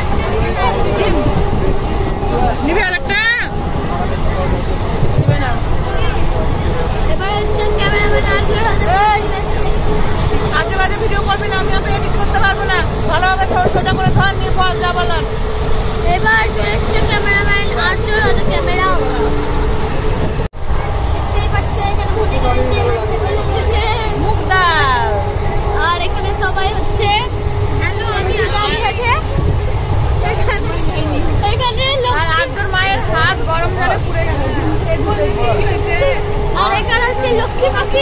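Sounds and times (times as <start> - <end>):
passengers talking: 0.0 - 38.0
train carriage rumble: 0.0 - 38.0.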